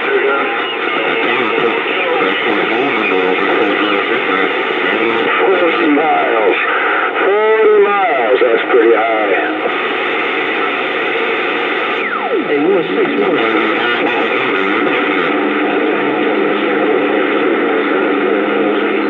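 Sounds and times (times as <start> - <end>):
garbled radio voices: 0.0 - 19.0
radio static: 0.0 - 19.0.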